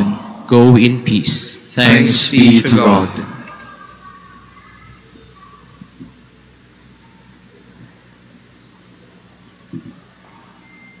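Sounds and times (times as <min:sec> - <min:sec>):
high-pitched electronic tone: 0:06.7 - 0:11.0.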